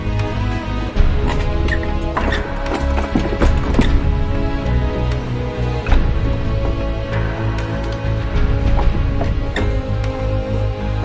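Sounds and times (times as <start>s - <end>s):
background music: 0.0s - 11.0s
sharp wooden knocks: 1.0s - 11.0s.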